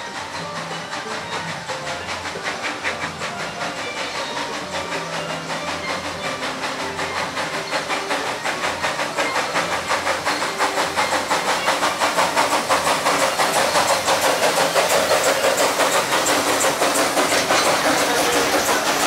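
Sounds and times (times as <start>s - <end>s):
steam locomotive exhaust chuffs: 0.0s - 19.0s.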